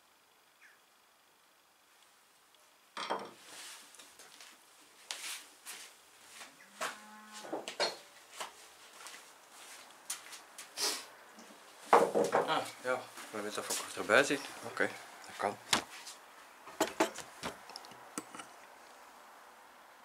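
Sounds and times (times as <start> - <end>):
tools knocked on wooden workbench: 3.0 - 3.4, 11.9 - 12.5, 16.7 - 17.2
footsteps: 3.4 - 10.8, 11.5 - 16.2.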